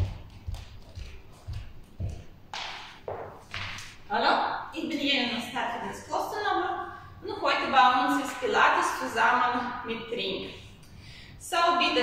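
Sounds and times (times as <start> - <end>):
barefoot footsteps on wooden floor: 0.0 - 4.0.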